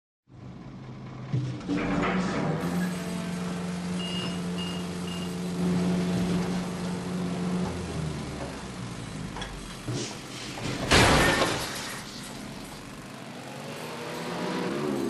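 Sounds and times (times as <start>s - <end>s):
garbage truck engine drone: 0.3s - 15.0s.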